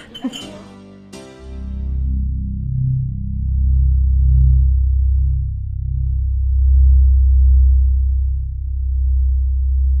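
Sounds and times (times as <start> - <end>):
ambient music drone: 0.4 - 10.0.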